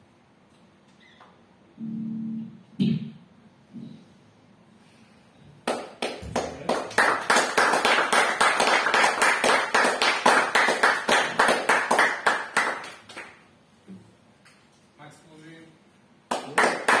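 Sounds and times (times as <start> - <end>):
audience applauding: 5.6 - 13.4, 16.3 - 17.0.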